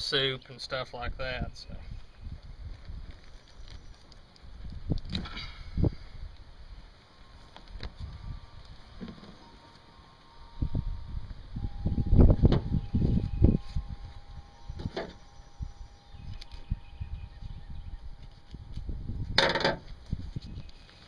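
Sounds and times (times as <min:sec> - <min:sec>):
dull low thumps: 0:10.6 - 0:20.6.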